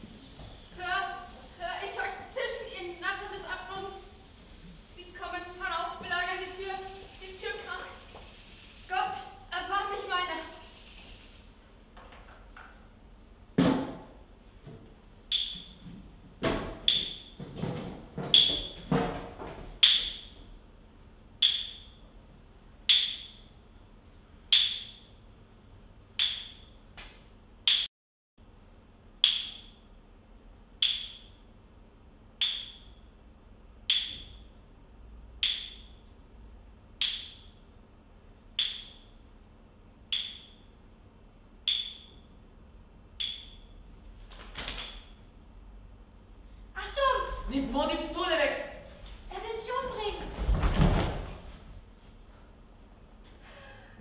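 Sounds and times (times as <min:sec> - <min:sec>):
sharp ringing percussive strikes: 0:00.0 - 0:09.2.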